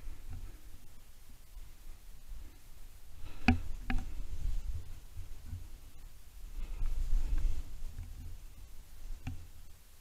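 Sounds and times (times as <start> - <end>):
faint low rumble: 0.0 - 10.0.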